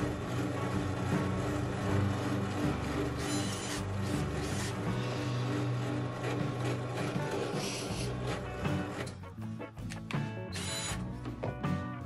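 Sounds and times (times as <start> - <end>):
drill press boring into wood: 0.0 - 9.1, 10.6 - 11.0
background music: 0.0 - 12.0.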